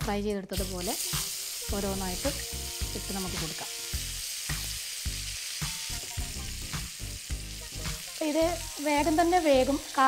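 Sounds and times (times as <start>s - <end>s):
vegetables sizzling in hot oil: 0.4s - 10.0s.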